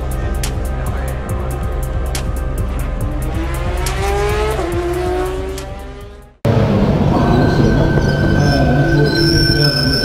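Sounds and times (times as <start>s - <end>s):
racing car engine passing: 2.6s - 8.8s.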